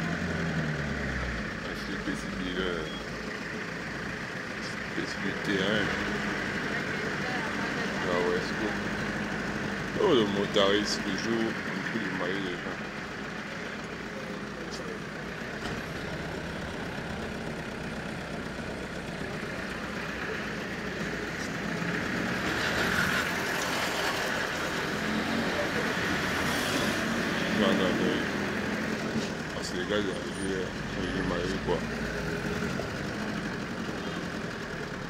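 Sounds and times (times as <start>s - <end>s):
car engine: 0.0s - 35.0s
street traffic: 0.0s - 35.0s.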